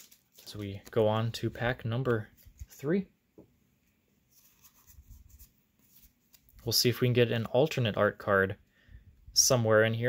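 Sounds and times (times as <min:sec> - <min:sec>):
cards sliding and rubbing: 0:04.3 - 0:06.6.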